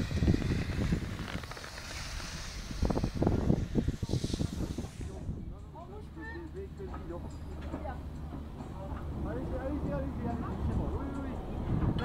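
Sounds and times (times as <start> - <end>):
skis hissing on snow: 0.0 - 5.3
wind rushing over microphone: 0.0 - 5.7, 10.1 - 12.0.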